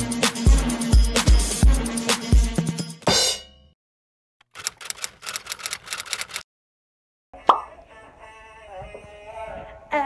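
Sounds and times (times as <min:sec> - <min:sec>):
sharp clicks like typing: 0:04.4 - 0:06.4.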